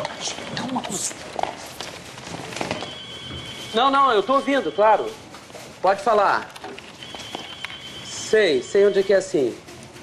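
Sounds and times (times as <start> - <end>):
shuffling footsteps: 1.0 - 10.0.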